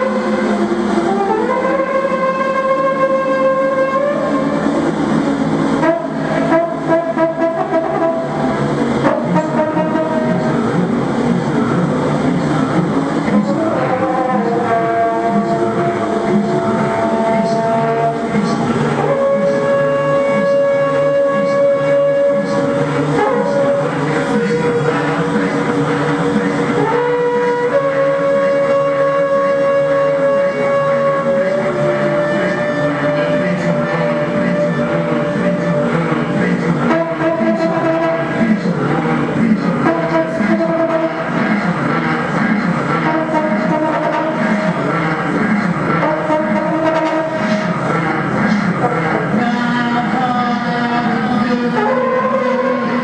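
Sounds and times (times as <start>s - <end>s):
low buzzing drone: 0.0s - 53.0s
sustained drone tones: 0.0s - 53.0s.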